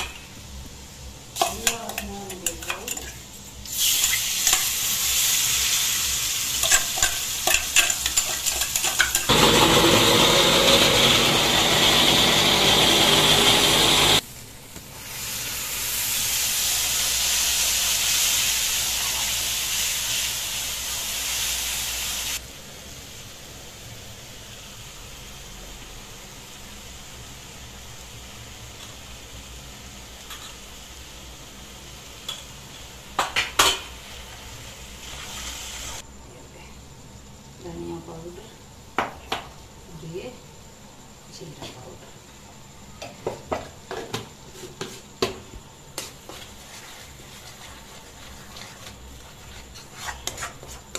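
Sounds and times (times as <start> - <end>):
paste sizzling in hot oil: 0.9 - 14.2, 14.9 - 23.4, 33.8 - 36.0, 45.9 - 50.9
metal spoon scraping a pan: 6.6 - 9.3, 46.3 - 50.9
low steady hiss: 14.2 - 43.5.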